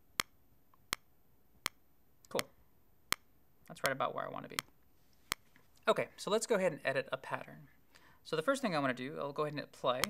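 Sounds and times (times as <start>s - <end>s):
metronome clicking: 3.1s - 4.7s.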